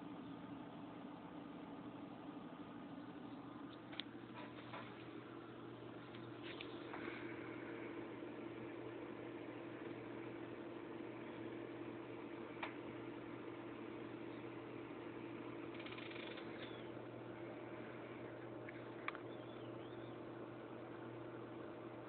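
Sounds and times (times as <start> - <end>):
low machine hum: 0.0 - 22.0.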